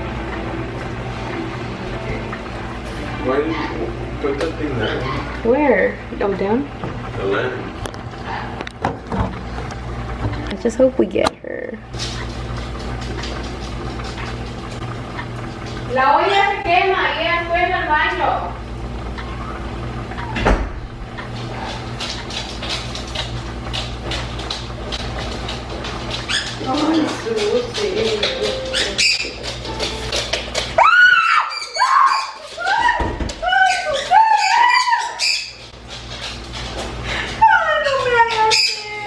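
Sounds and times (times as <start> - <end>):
pot bubbling: 0.0 - 34.2
woman screaming: 30.8 - 35.2, 37.4 - 39.0.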